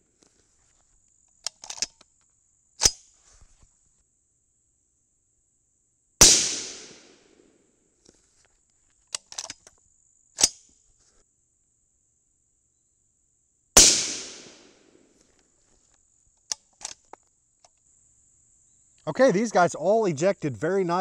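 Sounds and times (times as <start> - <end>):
rifle shot: 6.2 - 7.4, 13.8 - 15.0.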